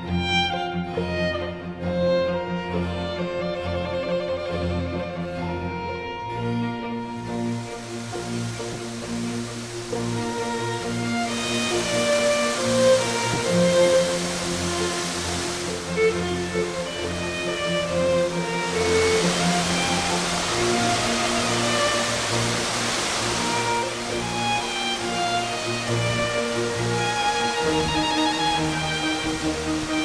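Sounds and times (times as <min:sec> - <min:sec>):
gentle instrumental music: 0:00.0 - 0:30.0
rushing hiss: 0:07.1 - 0:30.0.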